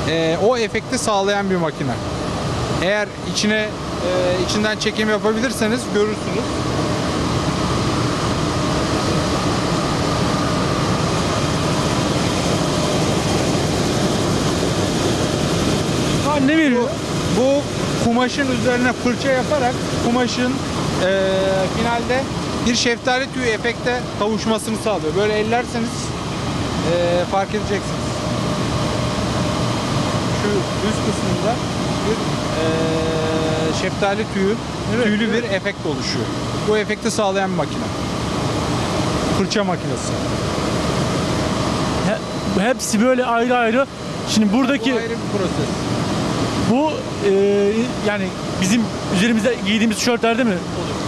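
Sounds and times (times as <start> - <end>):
faint steady hum-tone: 0.0 - 51.0
brushing machine running: 3.4 - 51.0.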